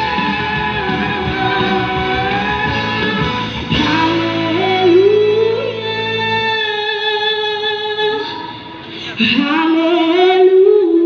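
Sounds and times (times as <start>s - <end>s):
low backing accompaniment: 0.0s - 10.8s
woman singing sustained notes: 0.0s - 11.0s.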